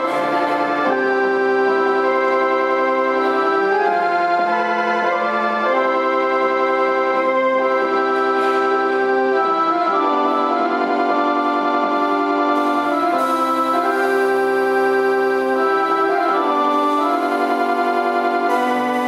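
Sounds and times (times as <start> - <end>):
electronic organ chords: 0.0 - 19.0.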